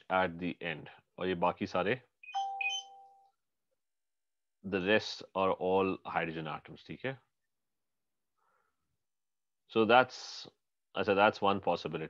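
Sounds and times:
electronic notification chime: 0:02.3 - 0:03.2.

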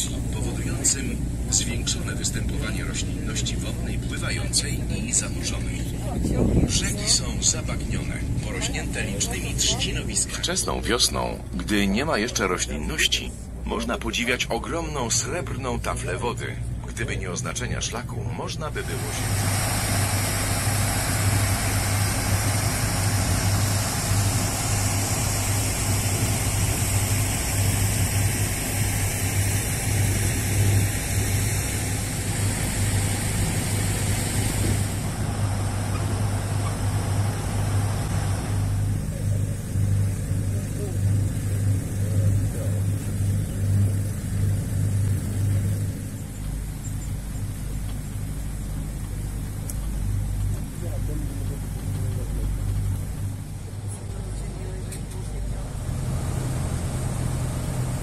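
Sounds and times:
boat engine running: 0:00.0 - 0:58.0
rushing hiss: 0:18.8 - 0:46.2.

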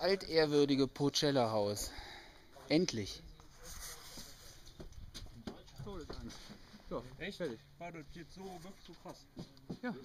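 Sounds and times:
low outdoor noise: 0:00.0 - 0:10.0.

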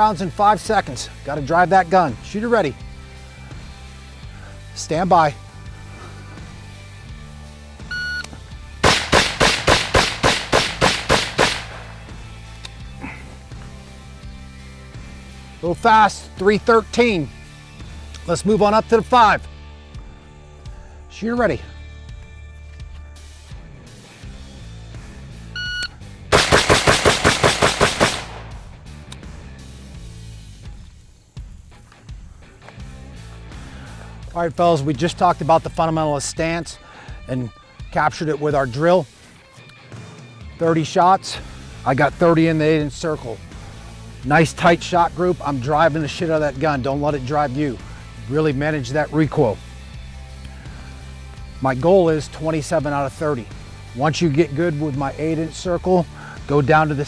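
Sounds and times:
background music: 0:00.0 - 0:57.0
shot timer beep: 0:07.9 - 0:08.3, 0:25.6 - 0:25.9
rapid gunshots: 0:08.8 - 0:12.0, 0:26.3 - 0:28.7.

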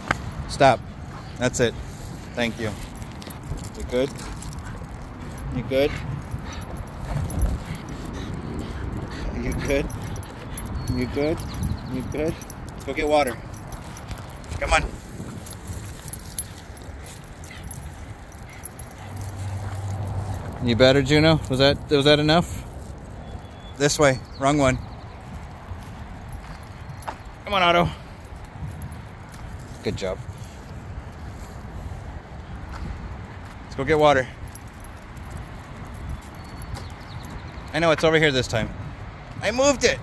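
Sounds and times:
steady low rumble: 0:00.0 - 0:23.2
dogs panting: 0:00.0 - 0:37.7
footsteps on asphalt: 0:25.2 - 0:33.7.

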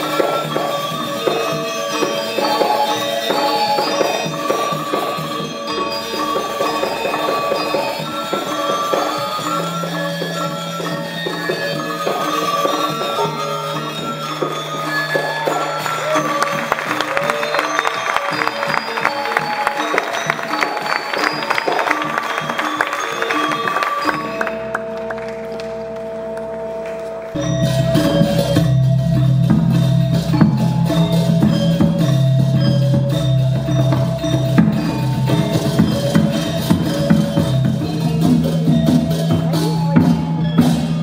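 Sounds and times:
metallophones ringing: 0:00.0 - 0:41.0.

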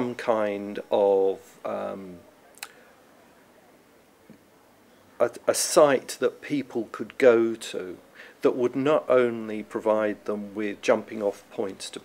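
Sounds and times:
man speaking: 0:00.0 - 0:02.2, 0:05.2 - 0:12.0.

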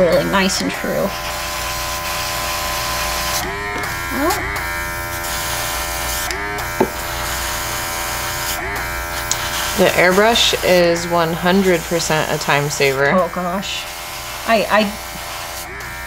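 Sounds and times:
compressor electric hum: 0:00.0 - 0:16.0.

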